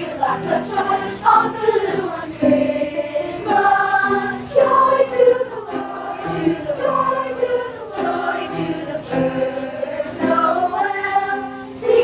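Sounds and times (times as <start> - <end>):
children's choir singing: 0.0 - 12.0
keyboard accompaniment: 0.0 - 12.0.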